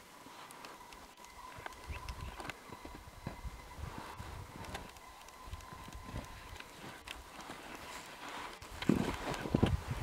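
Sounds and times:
skis crunching through snow: 0.0 - 10.0.

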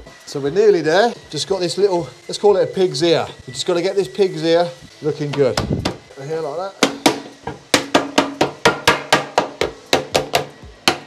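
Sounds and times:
dull knocks beating lead sheet: 6.8 - 11.0.

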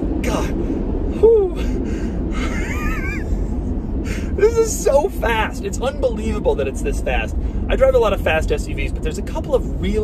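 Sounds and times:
low road noise rumble: 0.0 - 10.0
man squealing with laughter: 2.3 - 3.6.

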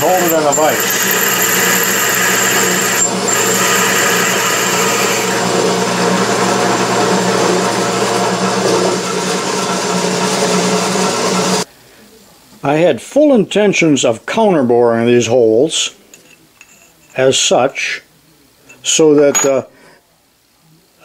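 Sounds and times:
drill cutting through metal: 0.0 - 7.6
drill press motor hum: 0.0 - 11.0.

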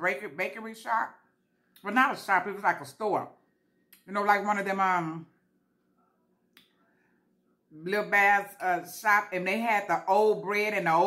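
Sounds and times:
woman speaking: 0.0 - 1.2, 1.8 - 3.4, 4.0 - 5.4, 7.7 - 11.0.

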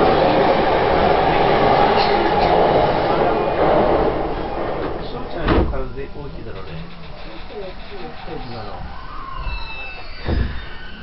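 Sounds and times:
electric train rolling past: 0.0 - 11.0.

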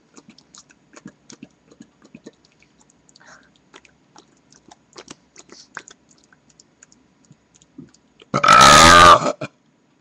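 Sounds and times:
man burping: 8.3 - 9.6.

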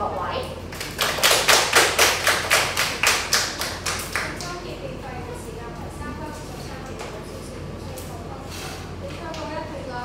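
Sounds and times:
people clapping in rhythm: 0.8 - 4.6.

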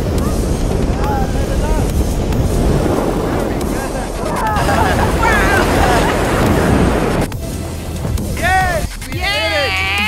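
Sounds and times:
wind buffeting microphone: 0.0 - 8.4
voices calling out: 4.1 - 6.8.

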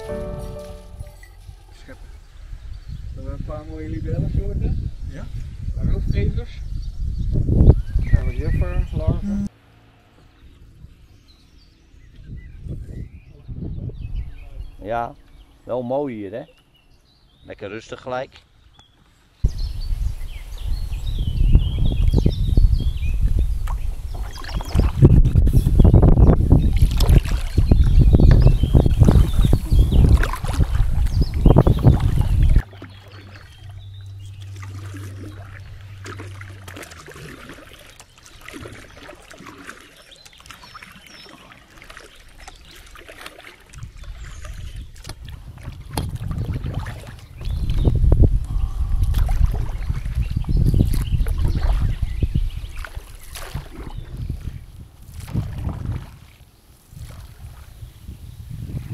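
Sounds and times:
wind rumble on microphone: 0.9 - 9.5, 10.3 - 15.6, 19.4 - 37.2, 43.7 - 58.9
water splashing against hull: 23.1 - 58.1
kayak paddle strokes: 29.0 - 47.9, 52.7 - 57.7.

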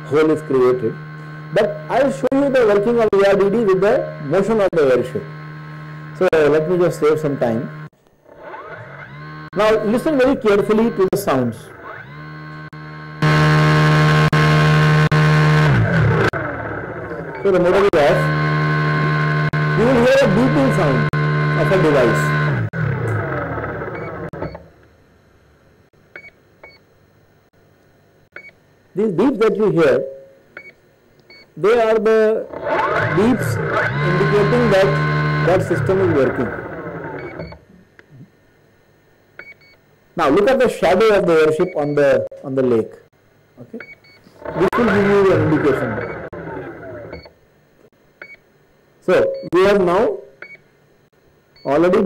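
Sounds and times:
propeller motor whirring: 0.0 - 24.8, 32.4 - 37.7, 44.3 - 47.3.

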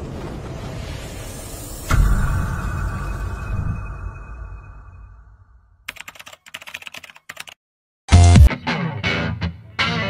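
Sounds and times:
rapid keyboard typing clicks: 5.9 - 7.6.

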